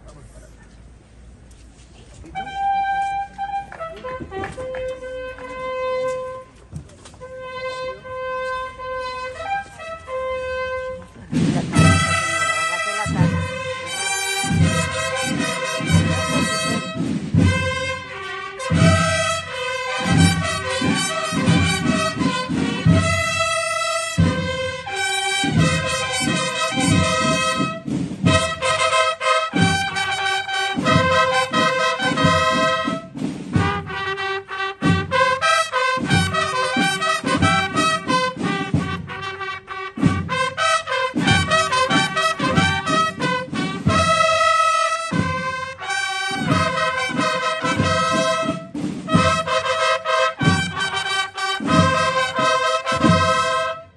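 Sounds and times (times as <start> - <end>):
brass band playing a march: 2.2 - 53.9.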